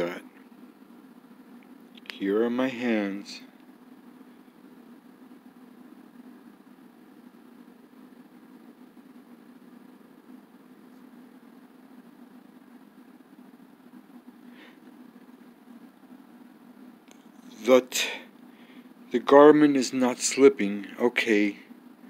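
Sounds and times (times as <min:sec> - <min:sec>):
faint low room hum: 0:00.0 - 0:22.0
soft hiss: 0:00.0 - 0:22.0.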